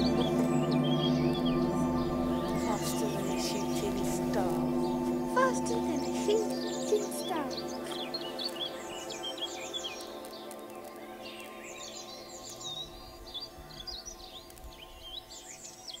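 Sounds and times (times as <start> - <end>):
synth drone: 0.0 - 15.9
songbirds chirping and trilling: 0.0 - 16.0.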